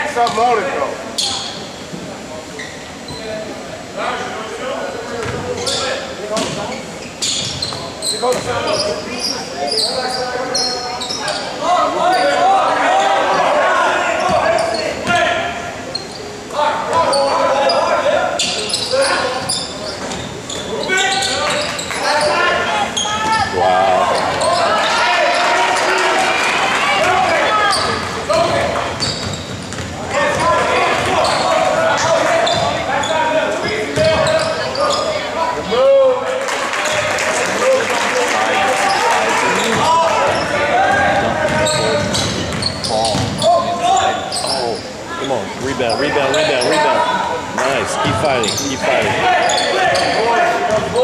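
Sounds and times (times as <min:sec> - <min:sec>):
many overlapping voices: 0:00.0 - 0:51.0
basketball bouncing on court: 0:28.0 - 0:31.4, 0:33.9 - 0:34.4, 0:39.8 - 0:43.5, 0:50.7 - 0:51.0.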